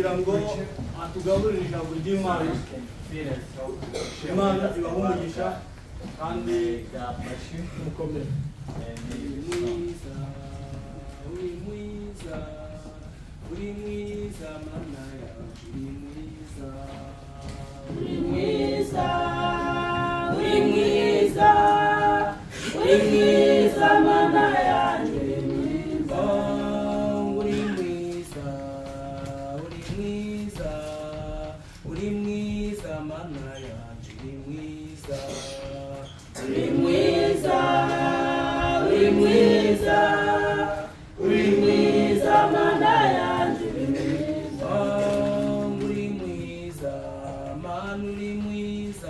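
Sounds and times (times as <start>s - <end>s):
group singing a hymn: 3.9s - 49.0s.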